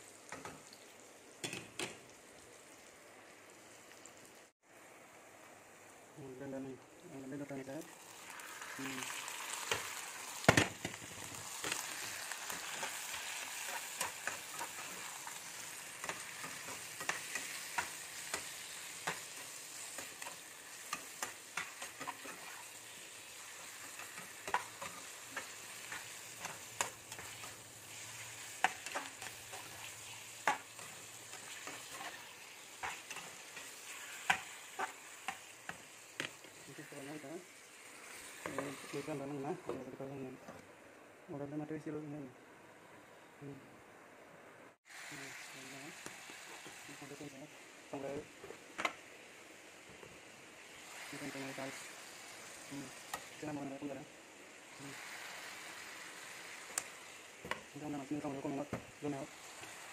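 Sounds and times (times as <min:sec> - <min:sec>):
meat frying in a pan: 0:00.0 - 0:40.4, 0:44.8 - 0:59.9
metal spatula scraping a pan: 0:11.8 - 0:23.0.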